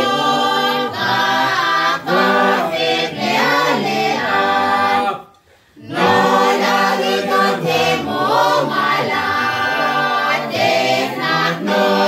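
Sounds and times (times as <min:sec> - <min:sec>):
group singing unaccompanied carol: 0:00.0 - 0:12.0.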